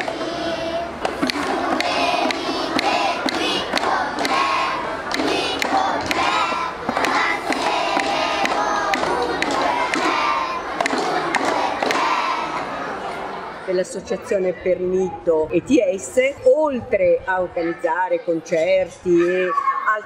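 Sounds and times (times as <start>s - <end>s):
children shouting and singing: 0.0s - 13.6s, 16.7s - 20.0s
hand claps: 1.0s - 12.2s.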